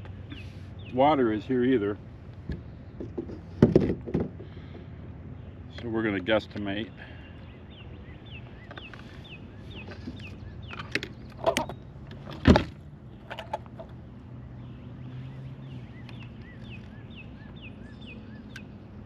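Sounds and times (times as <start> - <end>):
distant road traffic hum: 0.0 - 19.0
fishing tackle knocks and clicks: 9.8 - 14.0.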